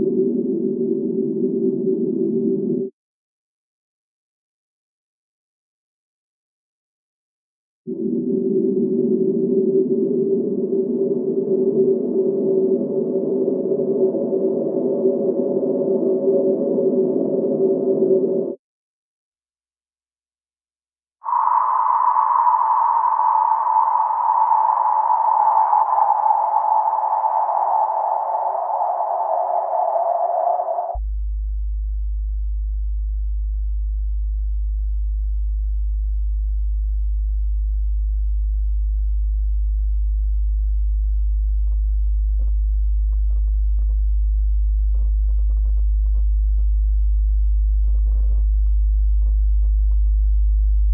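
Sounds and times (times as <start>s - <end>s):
very low sine tone: 0.0s - 3.0s, 7.9s - 18.6s, 21.2s - 50.9s
cello noisy sinking tone: 7.9s - 18.6s, 21.2s - 31.0s.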